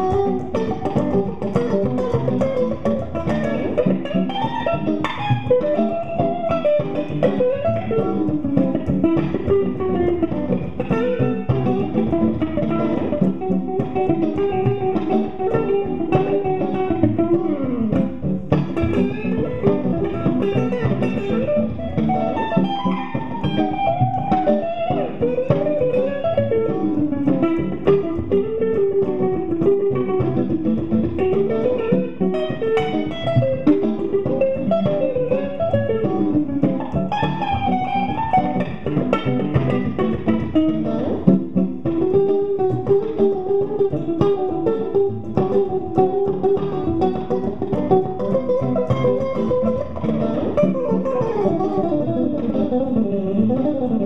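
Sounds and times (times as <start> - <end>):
clean electric guitar melody: 0.0 - 54.0.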